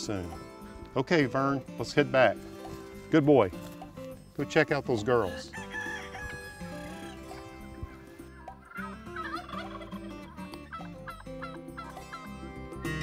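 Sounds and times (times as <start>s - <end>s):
turkeys gobbling: 5.2s - 13.0s.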